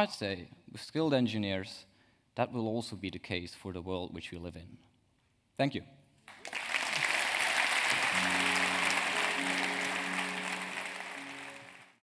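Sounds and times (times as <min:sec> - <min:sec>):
audience applause: 0:06.3 - 0:12.0
held-note closing music: 0:08.0 - 0:12.0.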